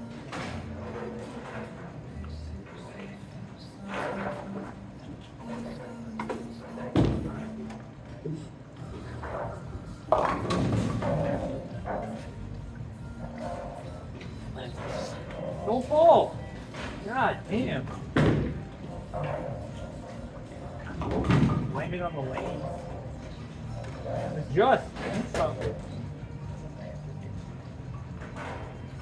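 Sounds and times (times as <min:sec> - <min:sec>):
background music: 0:00.0 - 0:29.0
bowling ball crashing into pins: 0:10.1 - 0:12.2, 0:20.9 - 0:21.8.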